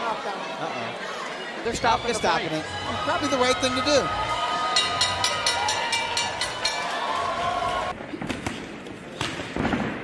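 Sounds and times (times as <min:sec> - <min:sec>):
boxing ring bell clanging: 0:04.8 - 0:06.9.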